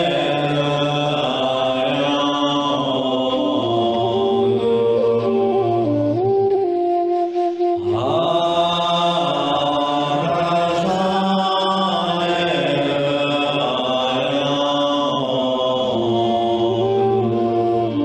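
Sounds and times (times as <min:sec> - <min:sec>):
man chanting: 0:00.0 - 0:05.8, 0:07.8 - 0:18.0.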